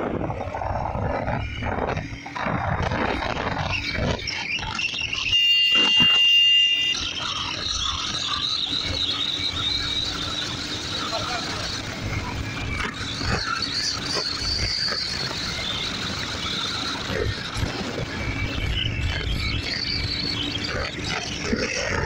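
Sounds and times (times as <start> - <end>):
wind buffeting microphone: 0.0 - 6.1
motorcycle engine accelerating: 0.0 - 22.0.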